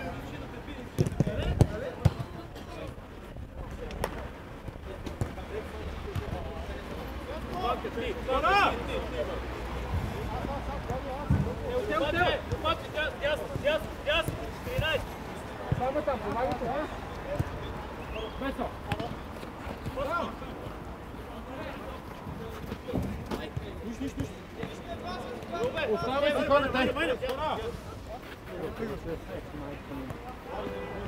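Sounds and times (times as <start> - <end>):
players shouting: 7.3 - 20.7, 23.4 - 27.8.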